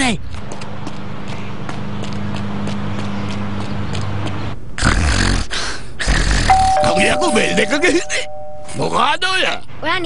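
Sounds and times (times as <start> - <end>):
two-note chime: 6.5 - 9.1.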